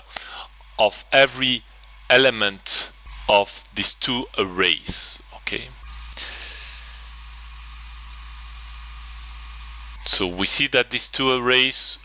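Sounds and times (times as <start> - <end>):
low hum: 0.0 - 12.0
steady hiss: 6.1 - 7.1.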